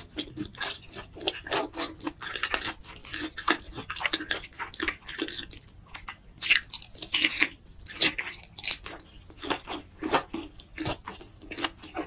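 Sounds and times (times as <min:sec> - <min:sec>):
person chewing food: 0:00.0 - 0:12.0.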